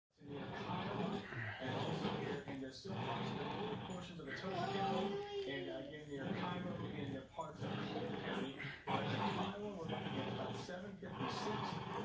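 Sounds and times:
small dogs growling: 0.2s - 12.0s
person talking: 4.5s - 6.0s.

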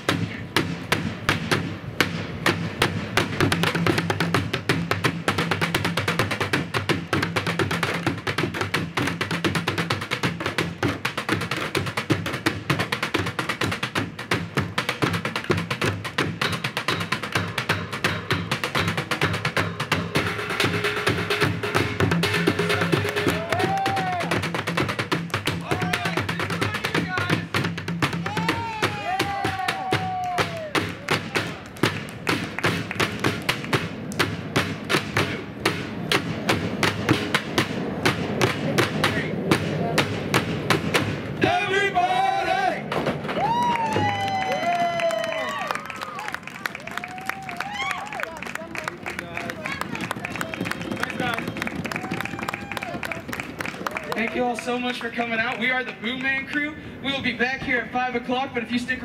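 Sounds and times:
drumming on plastic jugs and buckets: 0.0s - 41.6s, 42.7s - 45.6s, 47.4s - 56.1s.

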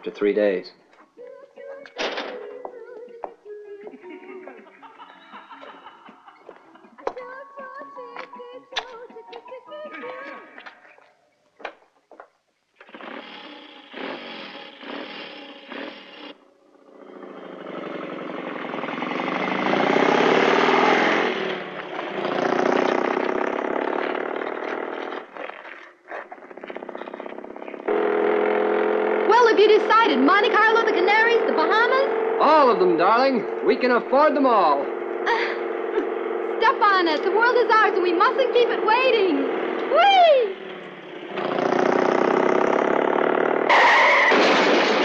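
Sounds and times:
motorcycle passing: 1.6s - 11.2s, 12.8s - 45.0s.

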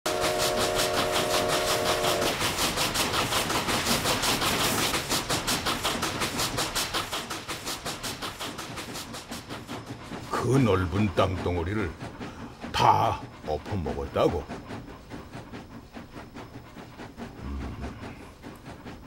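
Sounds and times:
steam locomotive whistle: 0.1s - 2.4s
locomotive exhaust chuffing: 0.1s - 19.0s.

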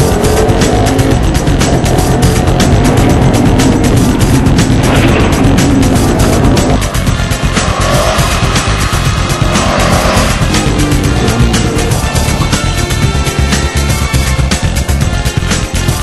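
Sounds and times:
background music with beat: 0.0s - 16.0s
car engine working hard: 0.0s - 16.0s.

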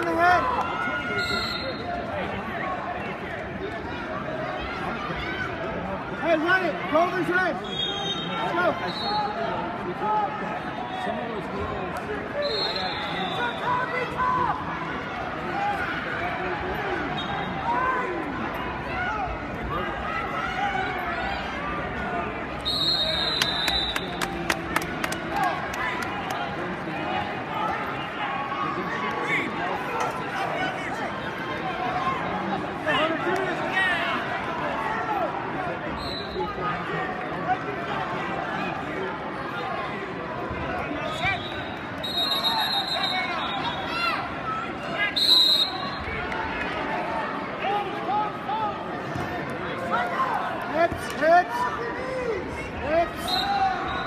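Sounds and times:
crowd voices and shouting: 0.0s - 54.0s
referee whistle blasts: 1.2s - 1.9s, 7.6s - 9.2s, 12.4s - 13.7s, 22.6s - 24.2s, 41.1s - 44.0s, 45.2s - 46.0s, 53.2s - 54.0s.

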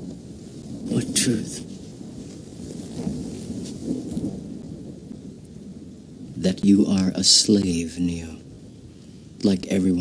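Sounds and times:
low rumbling thunder: 0.0s - 10.0s
steady rain: 0.0s - 10.0s.

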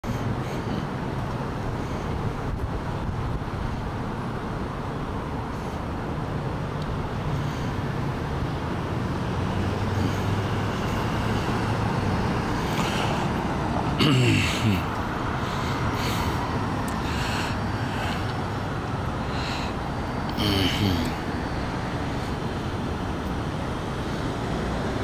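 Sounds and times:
road traffic hum: 0.0s - 25.0s
vehicle approaching: 0.0s - 25.0s.

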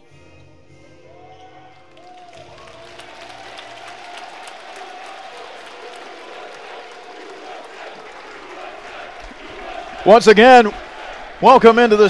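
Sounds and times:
crowd applauding and cheering: 1.5s - 12.0s.

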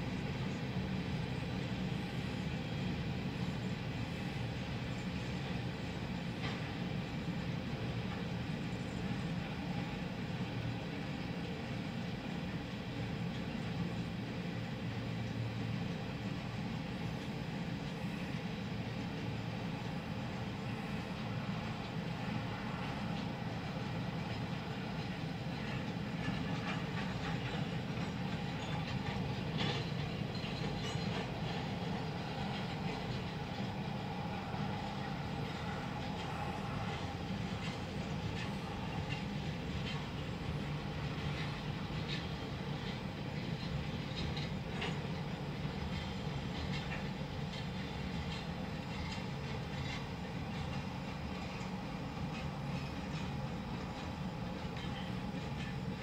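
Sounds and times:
freight train rumbling: 0.0s - 56.0s
wheels clicking over rail joints: 20.3s - 56.0s.

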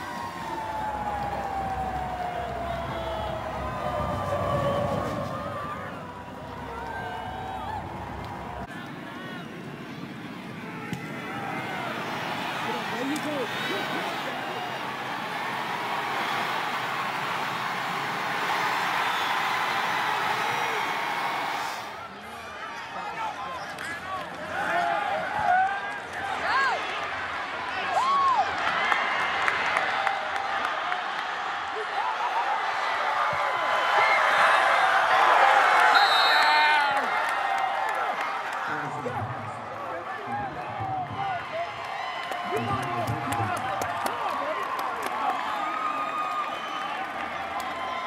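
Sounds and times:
stadium crowd cheering: 0.0s - 48.0s.

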